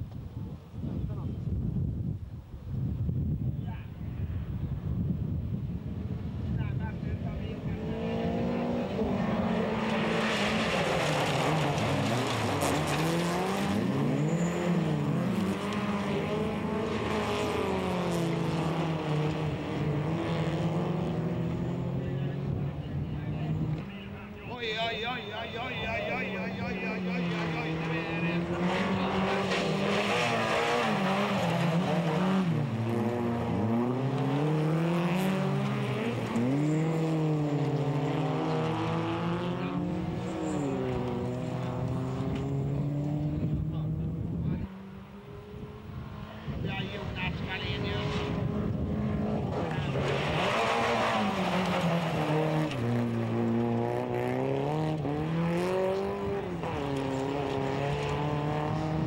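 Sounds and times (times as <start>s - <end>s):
race car engines revving: 3.6s - 59.0s.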